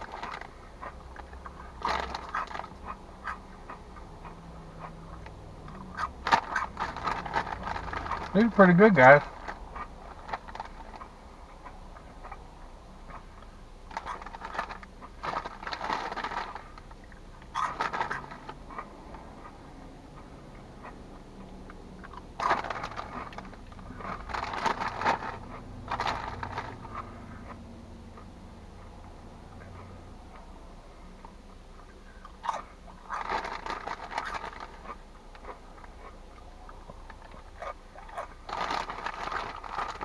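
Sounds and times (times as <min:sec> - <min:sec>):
crunchy snack being chewed: 0:00.0 - 0:04.1, 0:04.8 - 0:08.5, 0:13.1 - 0:21.0, 0:21.6 - 0:27.6, 0:31.2 - 0:40.0.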